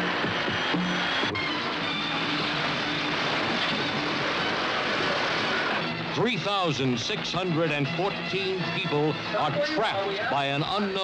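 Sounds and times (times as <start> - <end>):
loud continuous hiss: 0.0 - 7.3
engine running: 0.0 - 11.0.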